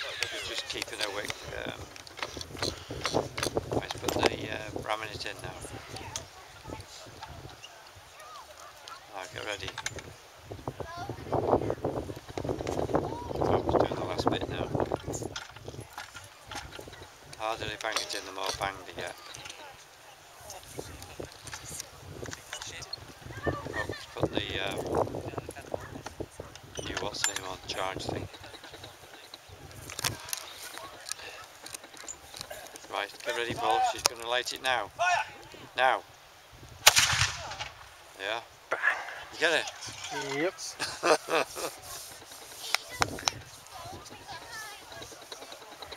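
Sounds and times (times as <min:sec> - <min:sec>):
cannon firing: 0:36.8 - 0:37.9.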